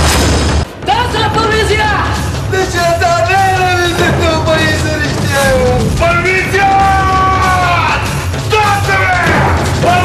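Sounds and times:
background music with steady beat: 0.0 - 10.0
person yelling: 5.3 - 10.0.

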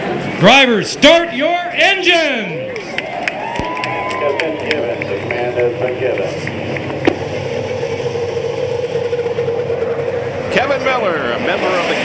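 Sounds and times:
race car engines revving: 0.0 - 12.0
crowd cheering: 1.1 - 7.0.

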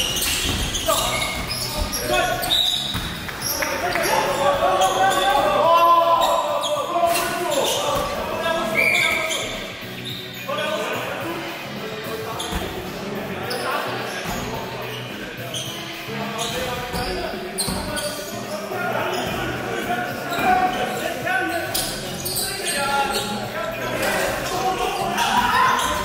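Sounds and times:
players shouting: 0.0 - 9.4, 22.1 - 26.0.

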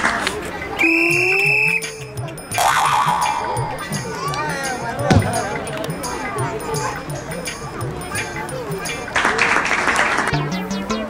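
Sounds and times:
background music: 0.9 - 11.0
comic rising pitch sound effect: 2.6 - 3.9, 10.4 - 11.0.

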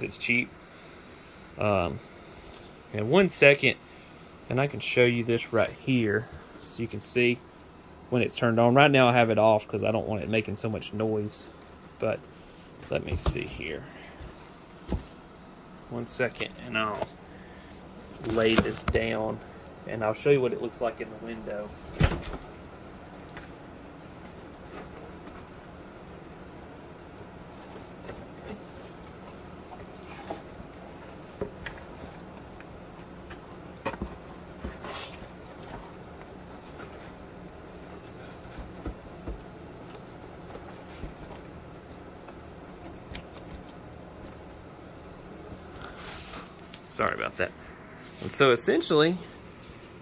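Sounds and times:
computer fans and pumps humming: 0.0 - 50.0.

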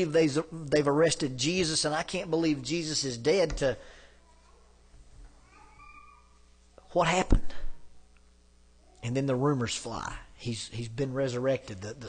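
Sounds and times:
man speaking: 0.0 - 3.8, 6.9 - 7.7, 9.0 - 12.0
faint high wavering cry: 5.4 - 6.4.

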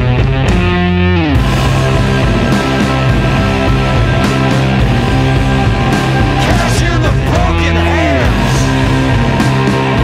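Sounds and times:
blues rock with electric guitar: 0.0 - 10.0.

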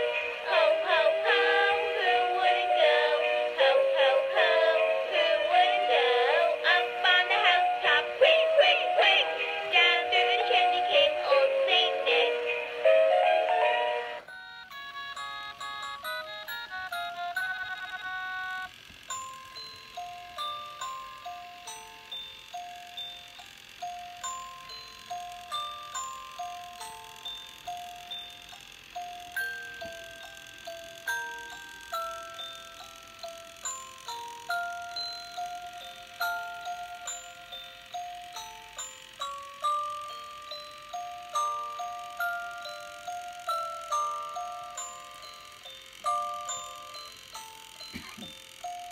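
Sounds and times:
tinny electronic chime melody: 8.6 - 48.9.

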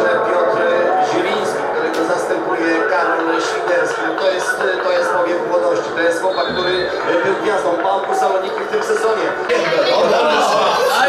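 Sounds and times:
commentator talking: 0.0 - 11.0
stadium crowd noise: 0.0 - 11.0.

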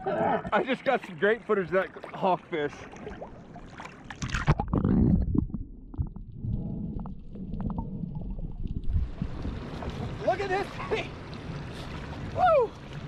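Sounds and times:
sea water splashing: 0.0 - 13.0
muffled underwater rumble: 4.3 - 10.3.

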